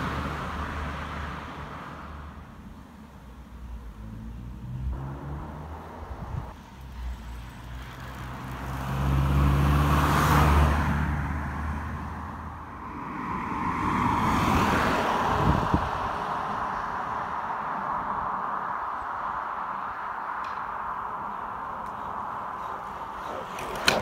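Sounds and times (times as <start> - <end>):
car engine hum and tyre noise: 0.0 - 24.0
vehicle tyre noise passing: 0.0 - 24.0.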